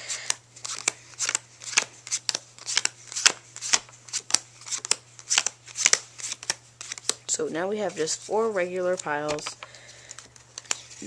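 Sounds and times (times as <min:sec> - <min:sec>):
playing cards being dealt: 0:00.1 - 0:11.0.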